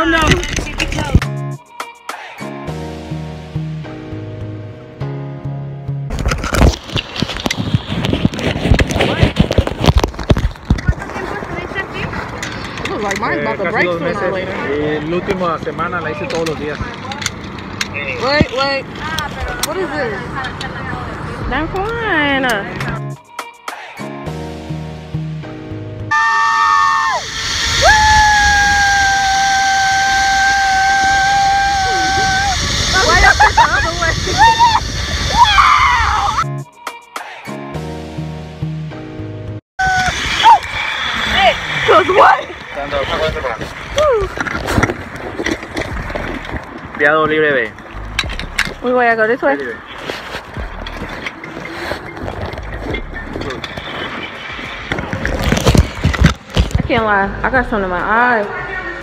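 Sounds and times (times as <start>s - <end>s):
wind and ride noise: 6.1s - 23.2s, 26.1s - 36.5s, 39.8s - 59.0s
woman screaming: 26.1s - 32.6s, 34.2s - 36.4s, 39.8s - 40.7s.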